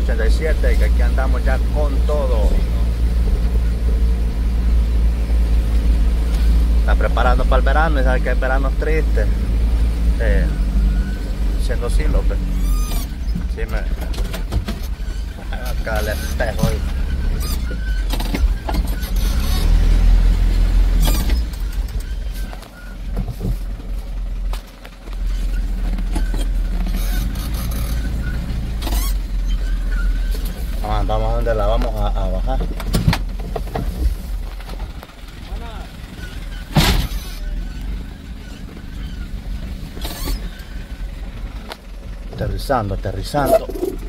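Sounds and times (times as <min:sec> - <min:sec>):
engine and road rumble: 0:00.0 - 0:44.0
vehicle body knocks and rattles: 0:12.9 - 0:17.0, 0:32.6 - 0:35.1.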